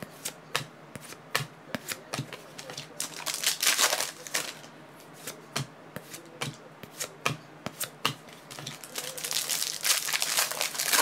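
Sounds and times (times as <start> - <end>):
card packs rustling and crinkling: 2.6 - 4.7, 8.5 - 11.0.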